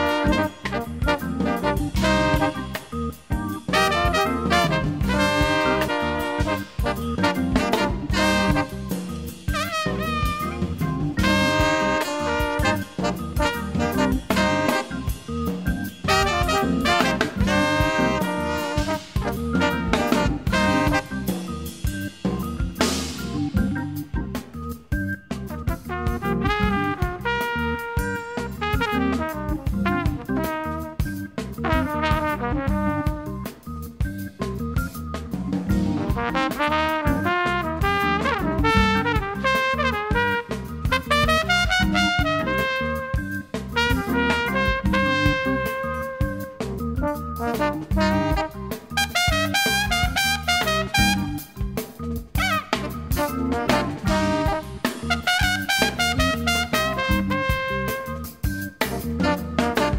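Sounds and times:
brass horn melodies: 0.0 - 35.0, 35.6 - 59.9
jazz ensemble playing: 0.0 - 59.9
steady drum beat: 0.0 - 59.9.

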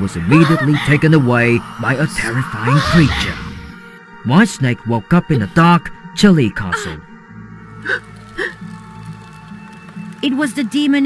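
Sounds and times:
ambient music drone: 0.0 - 10.5.

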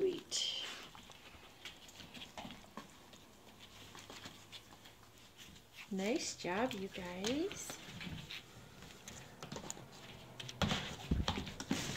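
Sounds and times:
puppies pattering on foam mats: 0.0 - 11.9.

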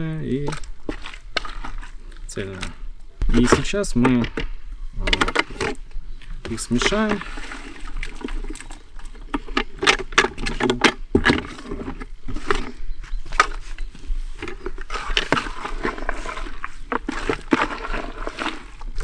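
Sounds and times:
spoon stirring bait: 14.4 - 19.0.

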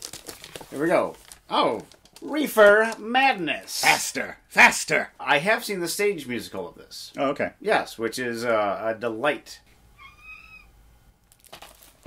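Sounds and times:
low room hum: 0.0 - 12.0
short high-pitched cry: 10.0 - 10.7.

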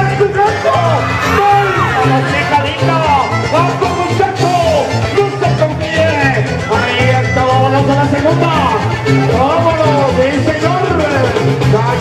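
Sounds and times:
loud latin-style music: 0.0 - 12.0.

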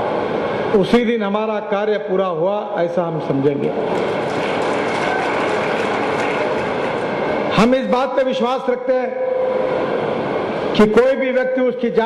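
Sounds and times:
crowd applauding: 3.8 - 7.5.

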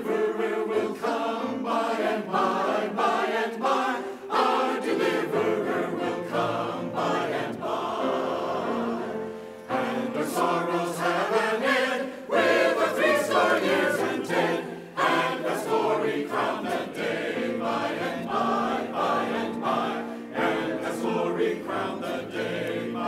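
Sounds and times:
church choir singing a hymn: 0.0 - 23.0
grand piano: 0.0 - 23.0.

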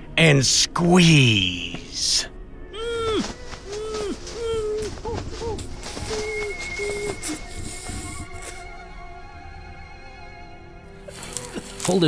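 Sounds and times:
held music notes: 0.0 - 9.8
man's choked cries: 2.8 - 7.8.

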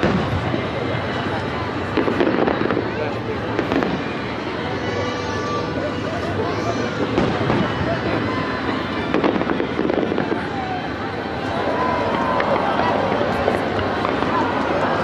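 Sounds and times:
crowd voices: 0.0 - 15.0
fireworks bursting: 0.0 - 15.0.

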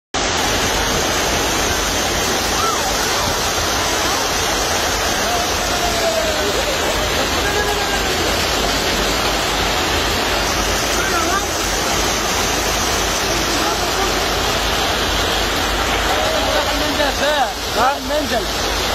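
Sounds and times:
heavy rain and hail on pavement: 0.4 - 18.9
faint voices: 0.6 - 18.6.

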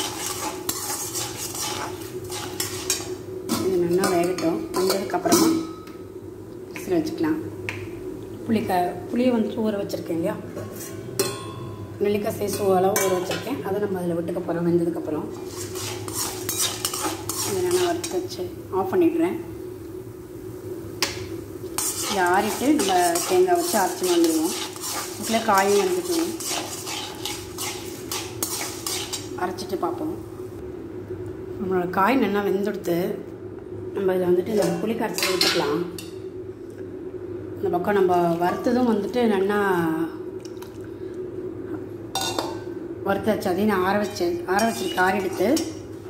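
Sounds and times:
ladle scraping metal pan: 0.0 - 5.6, 15.3 - 18.2, 21.8 - 29.4, 44.6 - 45.7
steady hum: 0.0 - 46.0.

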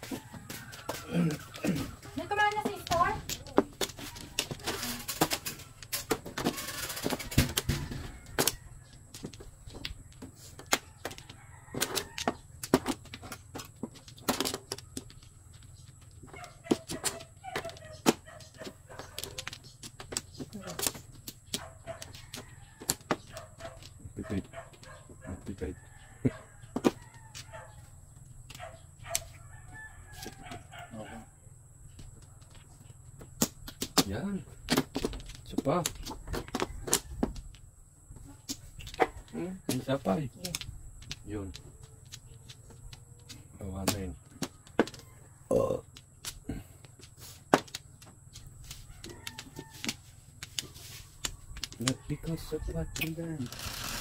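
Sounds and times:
plastic mahjong tiles clacking: 19.2 - 22.1, 40.4 - 45.0, 45.9 - 52.0.

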